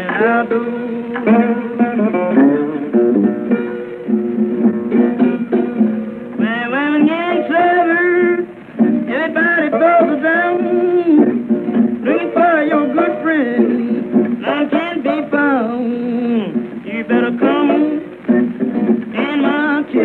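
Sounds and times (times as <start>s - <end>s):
person singing wordlessly: 0.0s - 2.9s, 6.4s - 11.4s, 12.0s - 20.0s
slide acoustic guitar: 0.0s - 20.0s.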